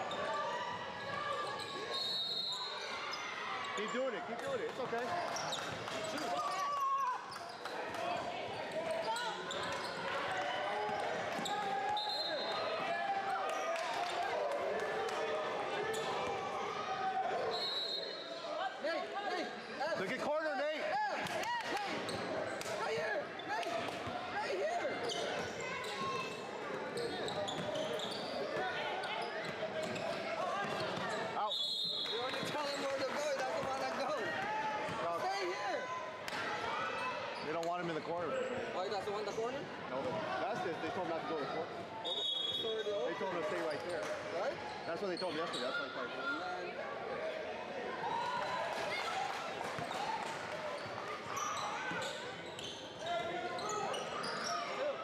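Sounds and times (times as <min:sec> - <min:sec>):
sneaker squeaks: 0:01.0 - 0:04.1, 0:08.5 - 0:10.1, 0:22.0 - 0:24.2, 0:24.9 - 0:32.9, 0:37.0 - 0:46.4, 0:49.7 - 0:55.0.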